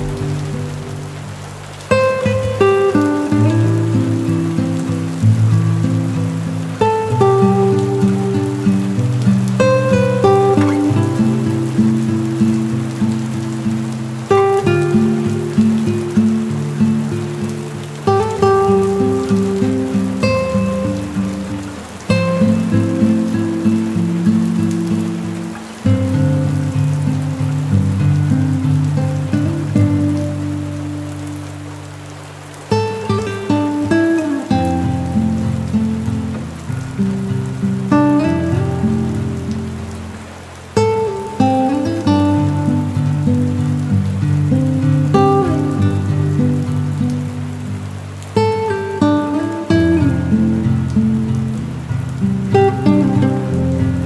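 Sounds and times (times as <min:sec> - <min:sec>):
rain on a windowpane: 0:00.0 - 0:54.0
soft instrumental music: 0:00.0 - 0:54.0.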